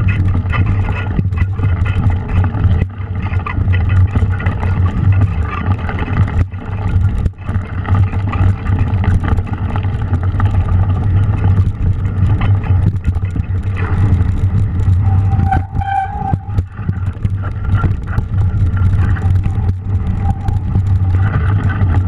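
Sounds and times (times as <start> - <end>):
wind and tyre rumble: 0.0 - 22.0
high squeal: 15.0 - 16.6.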